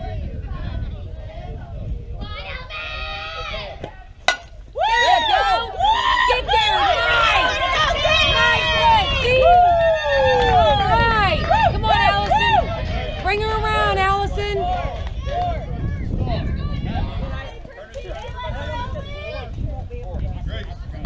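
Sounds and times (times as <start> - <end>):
bat cracking ball: 3.8 - 4.8
spectators shouting and cheering: 4.6 - 15.8.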